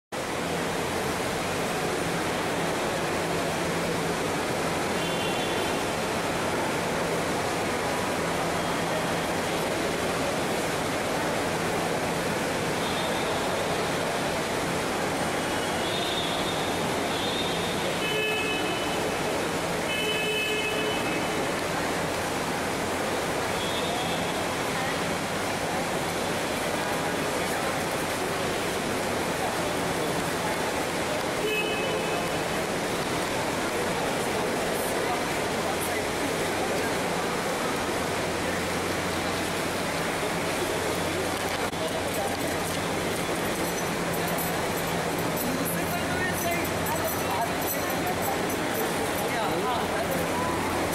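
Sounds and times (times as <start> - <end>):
crowd ambience hiss: 0.2 - 50.9
indistinct voices: 32.2 - 50.9.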